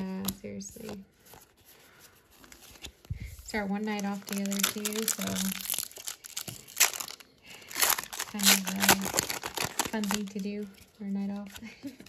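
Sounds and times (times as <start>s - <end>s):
cards and foil packs rustling: 0.0s - 12.0s.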